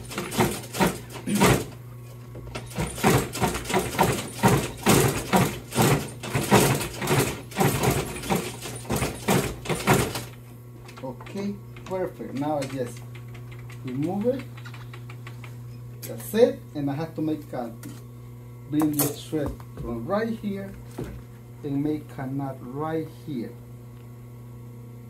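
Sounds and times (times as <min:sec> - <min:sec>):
sewing machine motor hum: 0:00.0 - 0:15.5.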